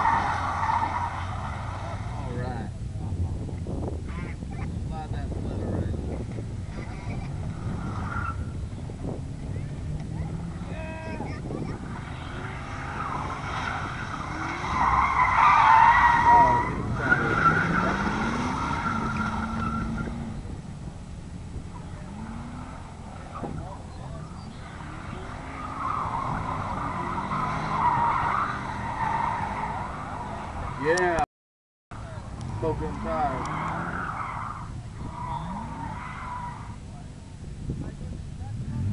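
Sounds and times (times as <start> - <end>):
car tyres squealing: 0.0 - 3.1, 5.4 - 20.6, 21.5 - 31.2, 32.0 - 37.1
car engine revving: 0.0 - 31.2, 32.0 - 38.9.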